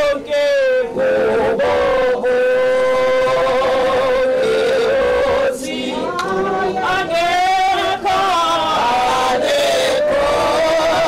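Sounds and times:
singer holding long note: 0.0 - 11.0.

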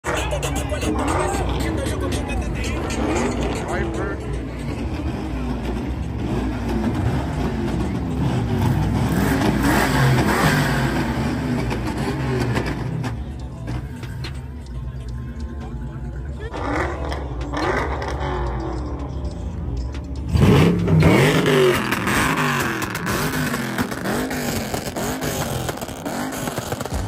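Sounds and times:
car engines revving: 0.0 - 27.0
crowd voices: 0.0 - 27.0.

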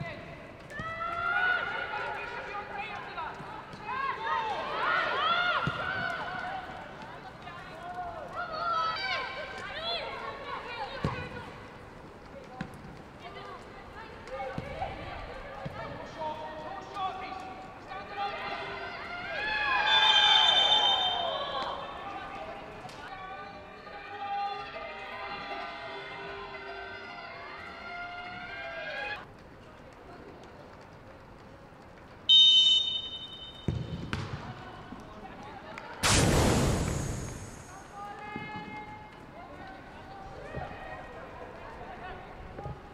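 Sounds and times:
players shouting: 18.1 - 22.3
referee's whistle: 19.8 - 21.6, 32.3 - 34.0.

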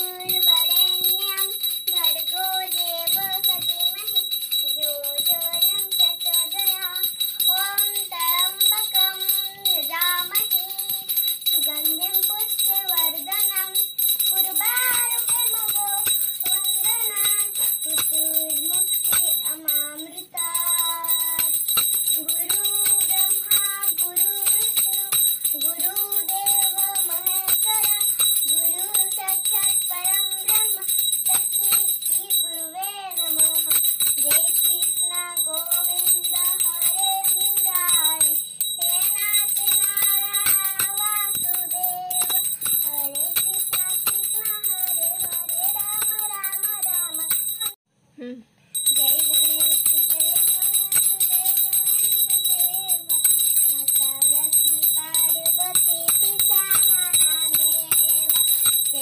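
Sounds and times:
girl singing a hymn: 0.0 - 47.5, 48.2 - 59.0
small hand bell ringing: 0.0 - 47.8, 48.7 - 59.0.

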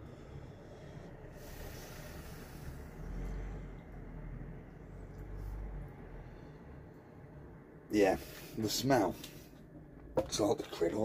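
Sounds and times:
person sniffing: 1.4 - 3.6.

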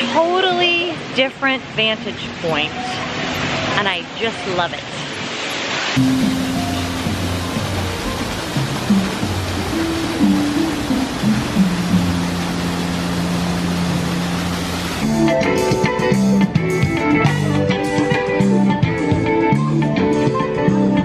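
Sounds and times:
small waterfall rushing: 0.0 - 16.2
music of low held notes: 6.0 - 17.8.

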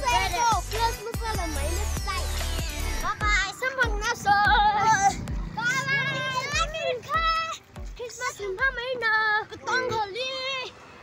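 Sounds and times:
children calling out: 3.1 - 7.6.

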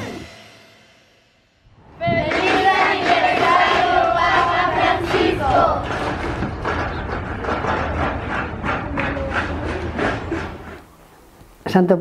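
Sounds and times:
children cheering: 2.0 - 10.7
quick sharp clapping: 2.3 - 10.8.

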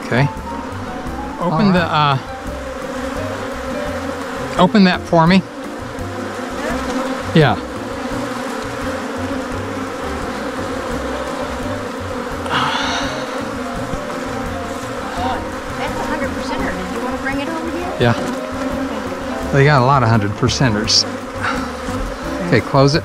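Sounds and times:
bees buzzing: 0.0 - 23.0.

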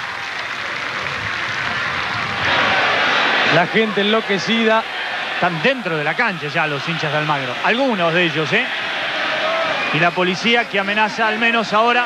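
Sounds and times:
stadium crowd uproar: 0.0 - 12.0.

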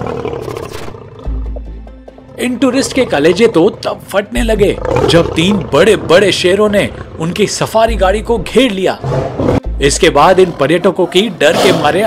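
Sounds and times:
dramatic background music: 0.8 - 12.0
lion roaring: 4.6 - 7.7, 11.5 - 12.0.

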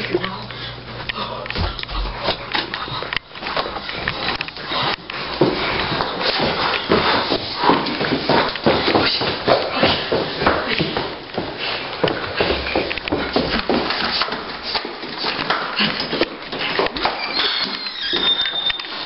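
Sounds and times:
footsteps running down stairs: 0.9 - 19.0.

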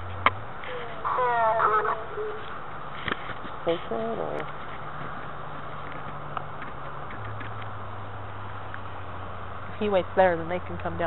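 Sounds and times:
high wavering voice-like utterance: 0.7 - 2.6.

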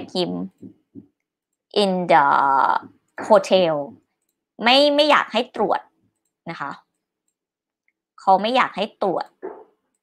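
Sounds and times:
woman speaking: 0.0 - 1.1, 1.7 - 4.0, 4.6 - 6.9, 8.2 - 9.6.

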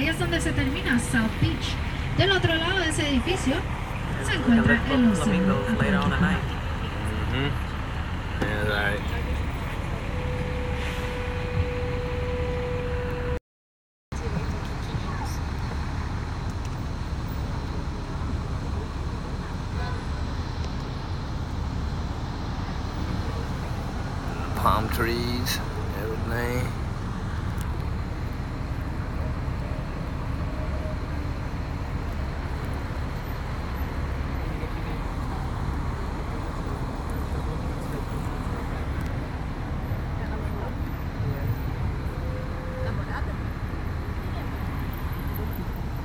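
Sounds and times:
road and traffic noise: 0.0 - 13.4, 14.1 - 46.0.

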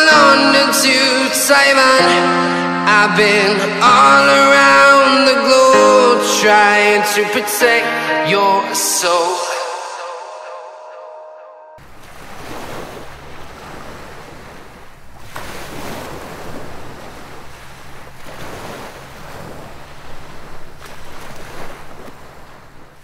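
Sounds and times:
music: 0.0 - 11.8
waves rushing: 11.8 - 23.0
wind: 11.8 - 23.0.

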